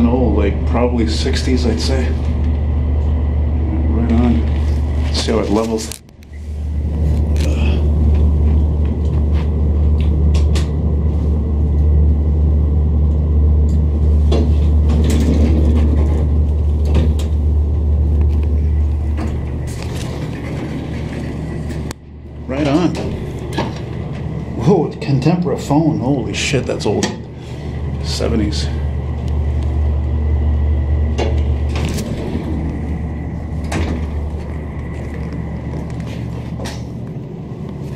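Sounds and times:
elevator car rumbling: 0.0 - 37.9.

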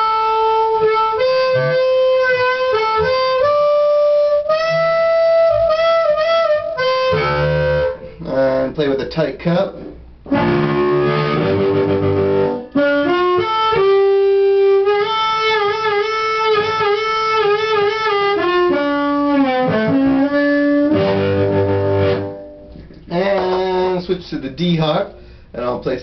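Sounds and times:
amplified blues harmonica: 0.0 - 8.7, 10.3 - 22.9.

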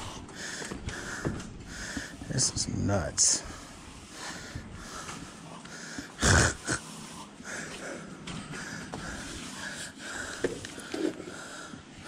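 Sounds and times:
man breathing heavily with wheezing: 0.0 - 2.4, 3.4 - 12.0.

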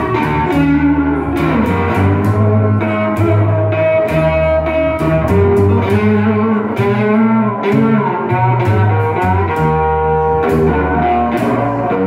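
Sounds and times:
electric guitar blues line: 0.0 - 12.0
upright bass: 0.0 - 12.0.

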